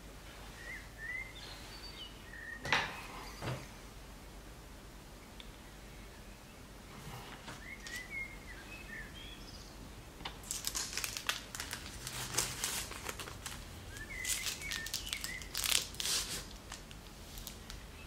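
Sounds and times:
baking paper crinkling: 0:10.4 - 0:17.9.

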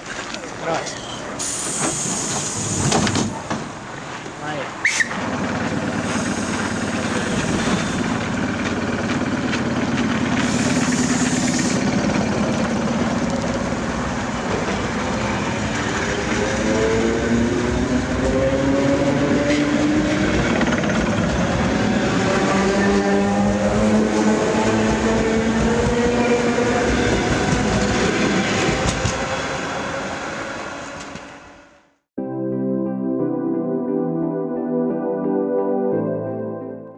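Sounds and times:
train wheels rumbling on rails: 0:00.0 - 0:31.6.

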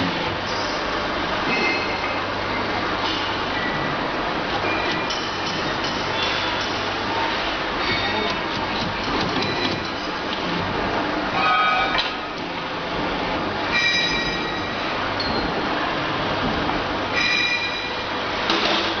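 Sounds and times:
loud machinery noise: 0:00.0 - 0:19.0
high-pitched metallic squeals: 0:11.3 - 0:12.0.

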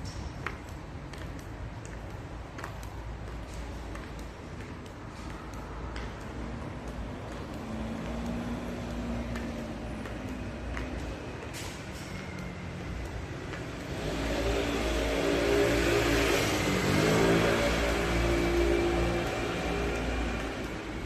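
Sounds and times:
vehicle engine passing by: 0:13.5 - 0:21.0.

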